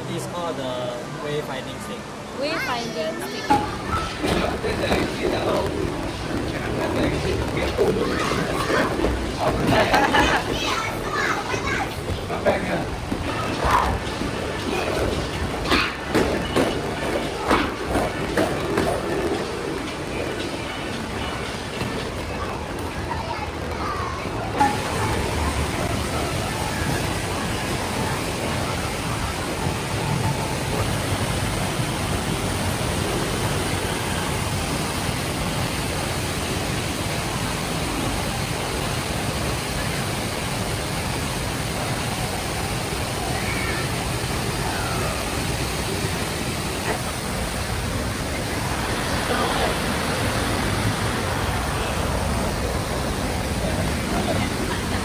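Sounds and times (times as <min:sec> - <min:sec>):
young children chattering: 0:02.3 - 0:34.6, 0:41.0 - 0:55.0
indoor waterfall rushing: 0:23.3 - 0:55.0.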